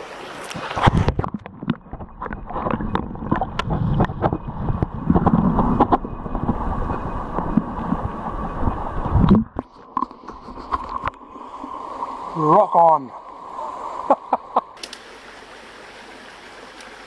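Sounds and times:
muffled underwater water churning: 0.5 - 14.8
underwater clicks and knocks: 0.6 - 11.2.

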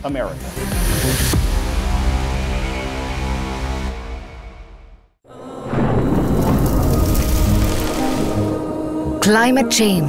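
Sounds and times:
music: 0.0 - 10.0
thunder rumbling: 5.4 - 8.9
rain falling: 5.7 - 8.7.

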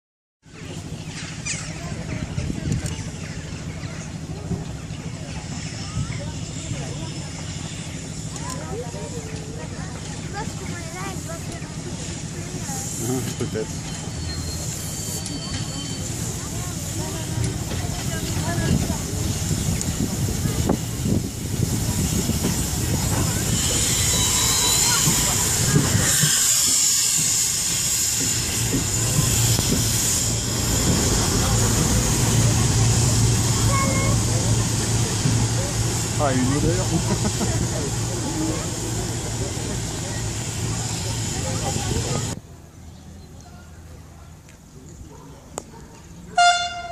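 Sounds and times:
crowd chatter: 0.4 - 46.9
steam locomotive rumbling: 0.5 - 44.4.

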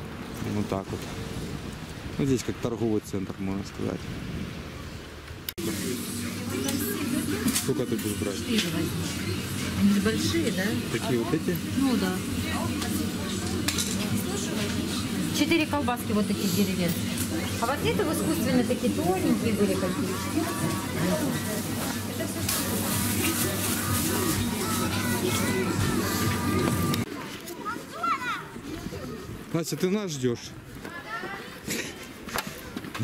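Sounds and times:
outdoor background noise: 0.0 - 33.0
indistinct voices: 5.6 - 27.1
children's voices: 17.3 - 29.5, 30.8 - 33.0
child calling: 19.5 - 21.4, 23.6 - 27.0, 27.6 - 28.6.

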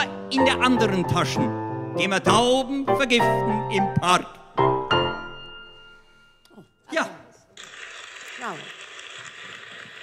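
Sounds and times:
piano chord: 0.1 - 6.4
applause: 7.6 - 10.0.

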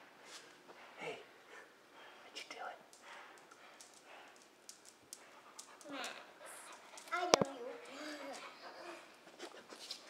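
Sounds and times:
dog claws clicking on tile: 2.9 - 8.4
dog panting: 3.0 - 10.0.

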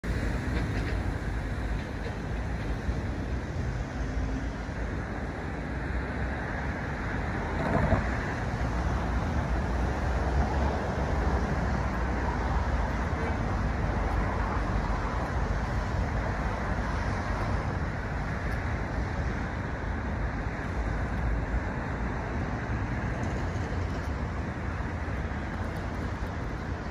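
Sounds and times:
road traffic rumble: 0.0 - 26.9.

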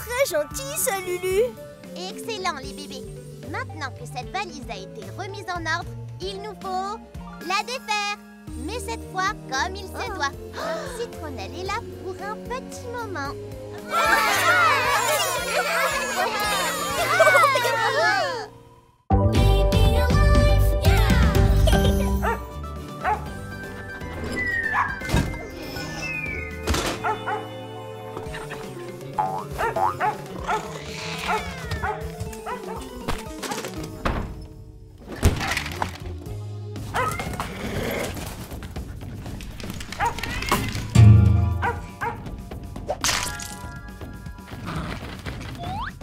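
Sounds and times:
children's background music: 0.0 - 34.1, 38.8 - 46.0
cartoon puppy barking and yipping: 13.9 - 18.3, 24.6 - 25.0, 28.3 - 33.6, 36.9 - 37.4, 39.9 - 40.8, 41.6 - 42.2
short falling whistle tone: 25.9 - 26.7
cartoon puppy yips and barks: 31.3 - 32.8, 37.0 - 37.4.

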